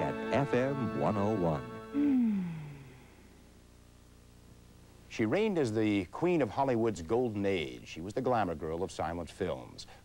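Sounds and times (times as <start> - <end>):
faint tape hiss: 0.0 - 10.0.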